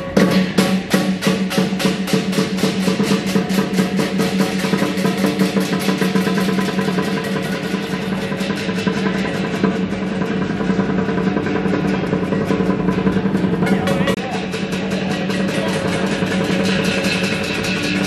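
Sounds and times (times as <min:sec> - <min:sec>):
clashing cymbals: 0:00.0 - 0:18.0
continuous metallic ring: 0:00.0 - 0:18.0
drum beat: 0:00.0 - 0:18.0.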